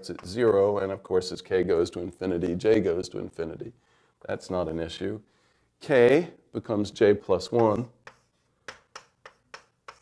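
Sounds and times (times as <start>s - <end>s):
writing tool tapping surface: 7.5s - 10.0s.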